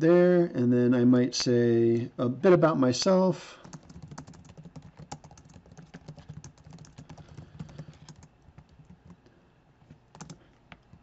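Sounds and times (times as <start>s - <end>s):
computer keyboard typing: 3.6s - 9.2s, 10.1s - 11.0s.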